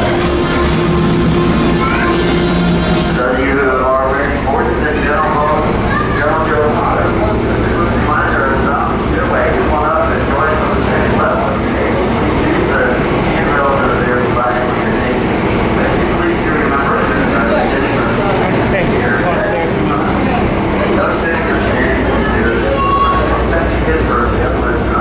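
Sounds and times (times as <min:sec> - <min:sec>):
ferry engine humming: 0:00.0 - 0:25.0
passengers chattering: 0:00.0 - 0:25.0.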